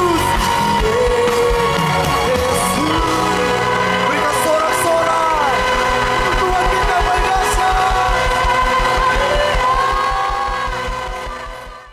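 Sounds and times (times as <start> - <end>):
worship band music: 0.0 - 11.9
rapid low pulsing bass: 4.8 - 11.9.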